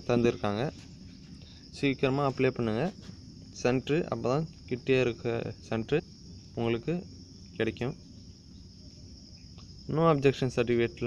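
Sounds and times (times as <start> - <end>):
high-pitched hiss: 0.0 - 11.0.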